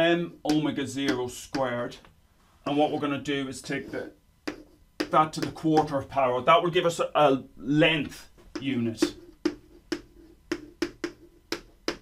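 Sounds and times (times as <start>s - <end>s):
chalk clicking on a blackboard: 4.4s - 6.0s, 8.5s - 12.0s.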